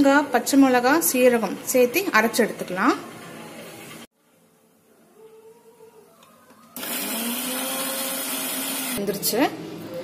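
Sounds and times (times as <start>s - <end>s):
mixer grinder motor whining: 6.7s - 9.0s.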